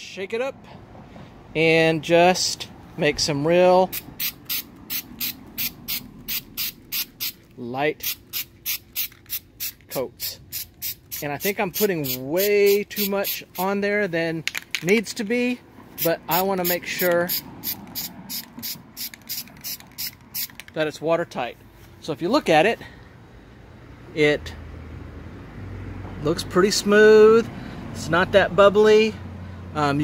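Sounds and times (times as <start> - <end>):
aerosol spray bursts: 3.9 - 7.4, 8.0 - 13.4, 16.0 - 20.6.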